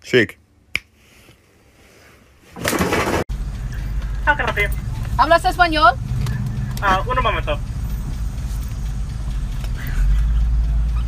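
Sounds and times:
car engine idling: 0:03.3 - 0:11.0.

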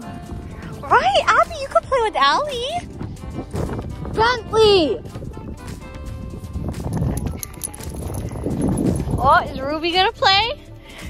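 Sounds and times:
faint music: 0:00.0 - 0:11.0
handling and wind noise: 0:00.0 - 0:11.0.

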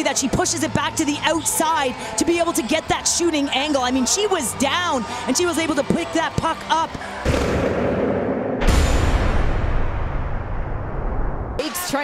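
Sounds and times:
deep boom with rumbling tail: 0:07.3 - 0:11.6.

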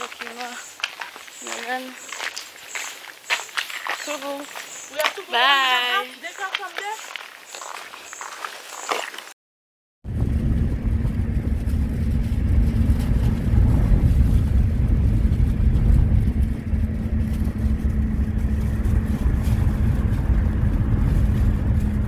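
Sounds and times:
engine and road rumble: 0:10.0 - 0:22.0
constant low hum: 0:10.1 - 0:22.0.

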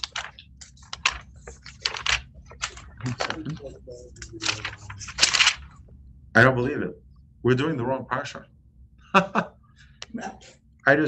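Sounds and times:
typing on computer keyboard: 0:00.0 - 0:03.4
low murmur: 0:00.0 - 0:11.0.

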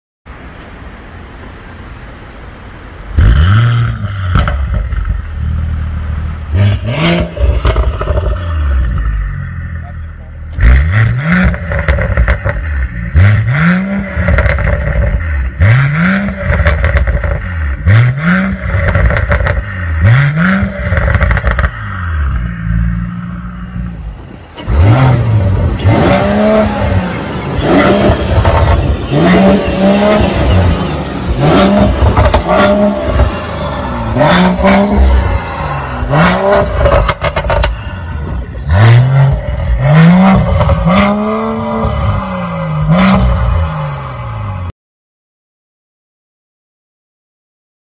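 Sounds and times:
car engine starting and revving: 0:03.0 - 0:44.7.

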